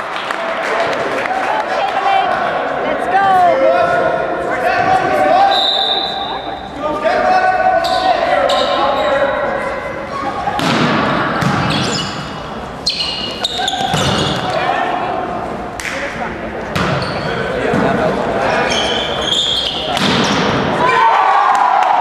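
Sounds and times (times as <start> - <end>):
players calling out: 0.8 - 22.0.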